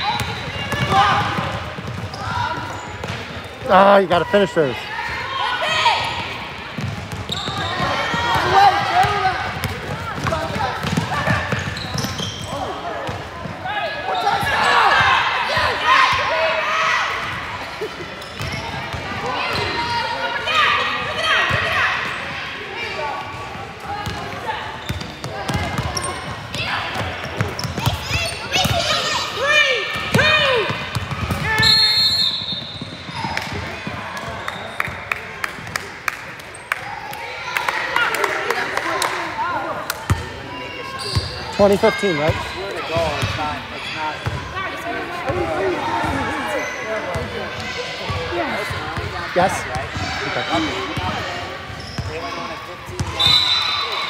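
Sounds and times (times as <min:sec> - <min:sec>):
voices shouting in echoing gym: 0:00.0 - 0:54.0.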